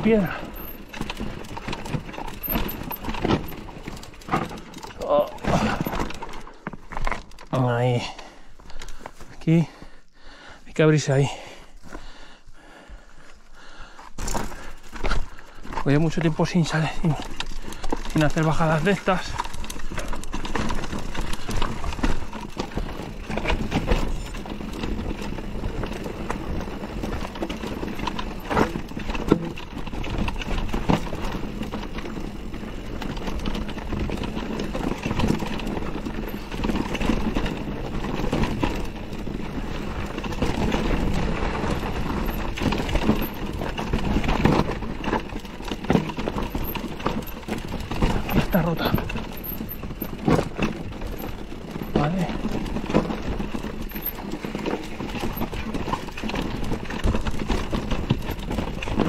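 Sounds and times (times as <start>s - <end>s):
tyres crunching over stones: 0.0s - 9.7s, 13.3s - 59.0s
bike rattling and knocking: 0.0s - 10.0s, 10.9s - 59.0s.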